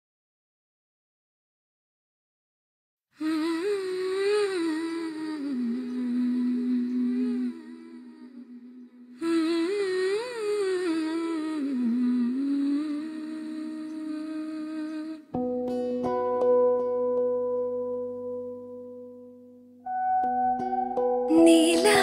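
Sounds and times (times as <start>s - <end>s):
person humming a melody: 20.6s - 22.0s.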